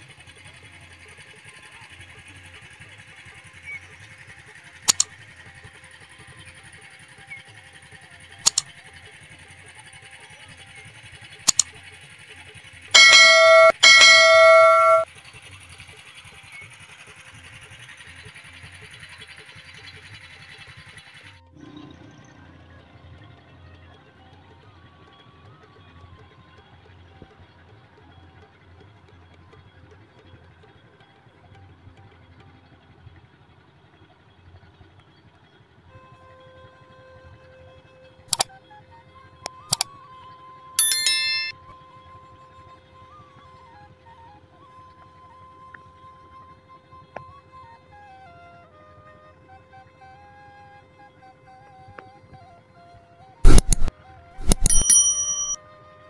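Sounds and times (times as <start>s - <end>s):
sharp clicks: 4.9s - 5.1s, 8.5s - 8.7s, 53.4s - 55.6s
bright chime-like ring: 13.0s - 15.1s, 40.8s - 41.6s, 53.5s - 55.6s
steady tone: 13.0s - 15.1s, 53.4s - 55.6s.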